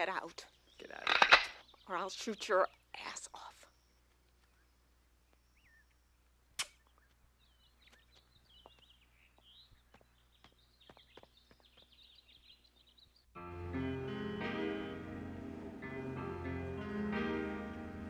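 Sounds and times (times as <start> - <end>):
faint high chirping calls: 0.4 - 13.3
sharp click: 6.6 - 6.8.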